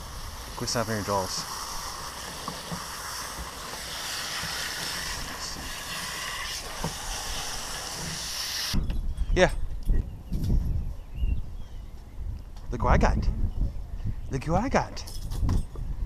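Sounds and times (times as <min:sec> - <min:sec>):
hose nozzle spraying water: 0:00.0 - 0:08.8.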